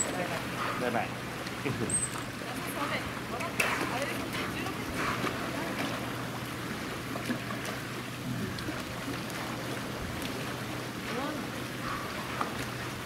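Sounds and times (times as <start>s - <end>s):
water lapping and sloshing: 0.0s - 13.0s.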